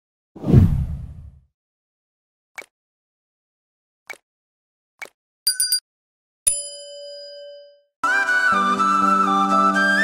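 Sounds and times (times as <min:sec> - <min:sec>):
deep whoosh with low boom: 0:00.4 - 0:01.4.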